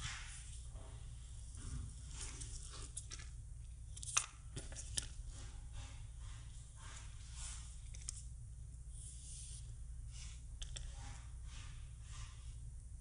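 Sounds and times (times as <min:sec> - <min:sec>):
steady low hum: 0:00.0 - 0:13.0
cord rustling and scraping: 0:01.4 - 0:05.6.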